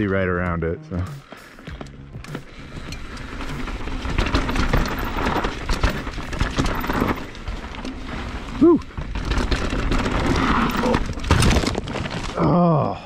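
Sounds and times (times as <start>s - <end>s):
music: 0.0s - 5.0s
bike tyres crunching on gravel: 1.1s - 12.6s
bike clattering and knocking: 1.7s - 8.1s.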